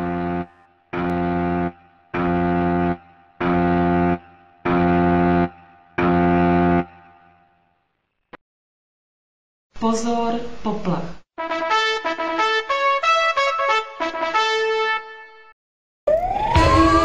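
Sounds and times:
alarm horn low blasts: 0.0s - 7.6s.

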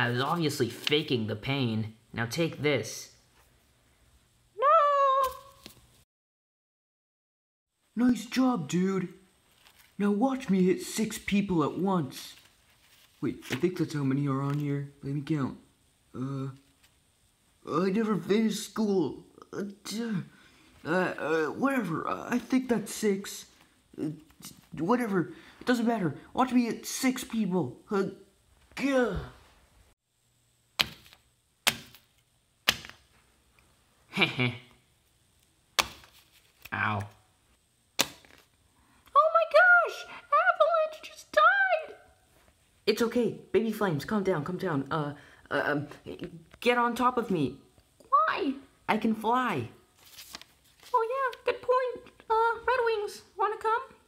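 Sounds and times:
high-pitched cry: 4.6s - 5.6s.

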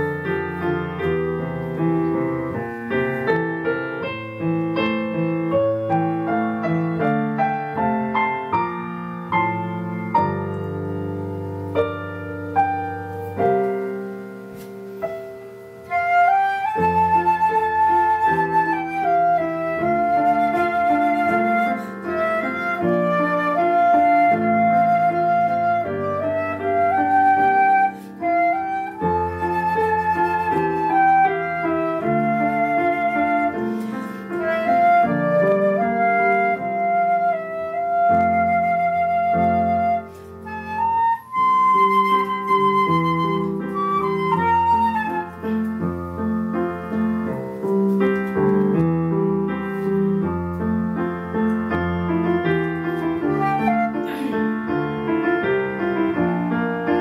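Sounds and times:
flute melody: 0.0s - 57.0s
piano accompaniment: 0.0s - 57.0s.

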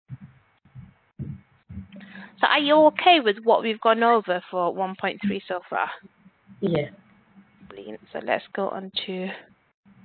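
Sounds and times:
faint low dull thuds: 0.1s - 2.0s.

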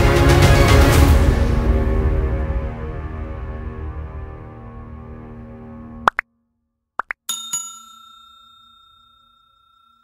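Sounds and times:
background music: 0.0s - 6.2s
bell-like ding: 7.3s - 10.0s.

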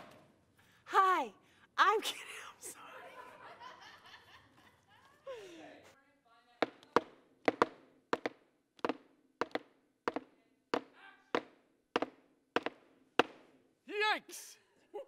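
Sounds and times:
hammer and mallet strikes: 6.6s - 13.5s.

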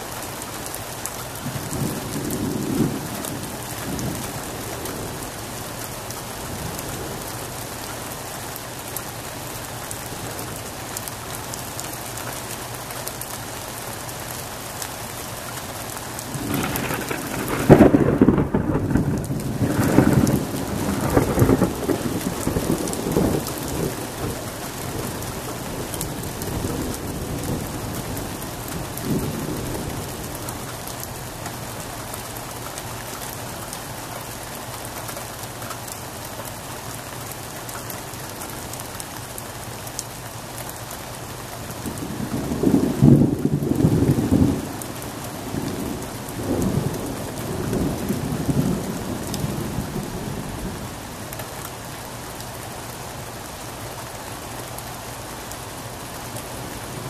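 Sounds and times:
steady rain falling: 0.0s - 57.0s
loud thunderclap: 16.3s - 25.2s, 41.9s - 44.7s
thunder rolling: 16.3s - 30.1s.

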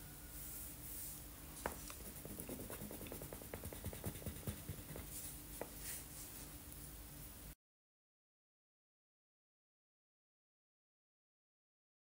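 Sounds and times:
marker tip tapping paper: 1.7s - 5.0s
marker scratching on paper: 1.7s - 6.0s.

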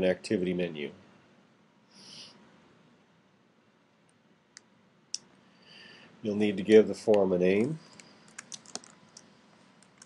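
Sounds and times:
computer mouse clicks: 7.8s - 10.0s.

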